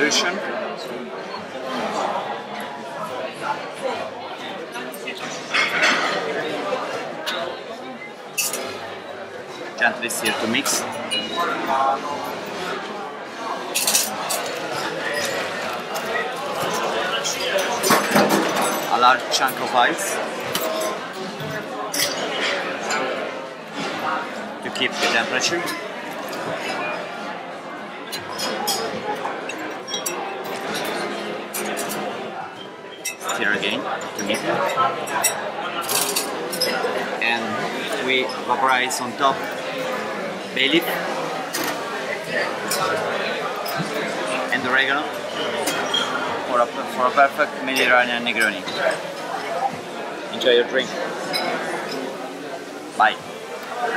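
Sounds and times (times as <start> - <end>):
bar chatter: 0.0 - 53.9.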